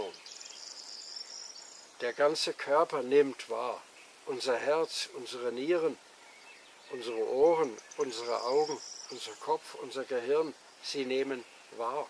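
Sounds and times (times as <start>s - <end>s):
insect trilling: 6.8s - 11.1s.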